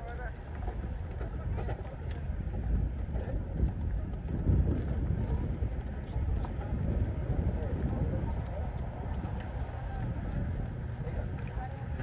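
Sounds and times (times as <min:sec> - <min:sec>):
footsteps on wooden boardwalk: 0:00.0 - 0:12.0
people talking: 0:00.0 - 0:12.0
wind buffeting microphone: 0:00.0 - 0:12.0.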